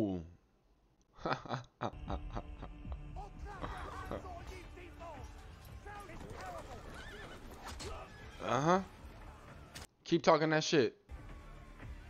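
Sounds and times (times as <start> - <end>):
people talking: 3.2 - 7.2
horse whinnying: 5.3 - 9.3.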